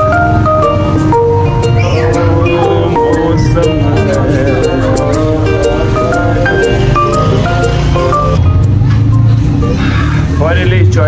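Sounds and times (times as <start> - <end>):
background music: 0.0 - 11.0
motorcycle passing: 0.0 - 11.0.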